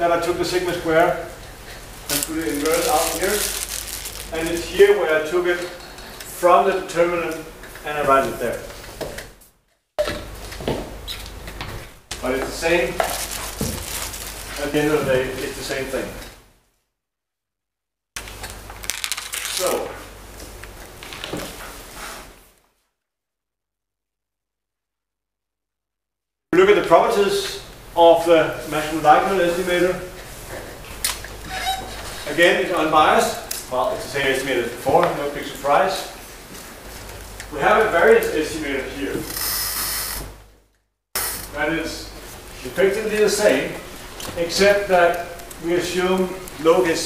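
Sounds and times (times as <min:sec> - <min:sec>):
steady high hiss: 0:00.0 - 0:05.6, 0:12.2 - 0:16.4, 0:26.6 - 0:31.2, 0:37.4 - 0:40.3, 0:41.2 - 0:47.0
papers and laptop handling clicks: 0:02.1 - 0:04.7, 0:12.9 - 0:14.7.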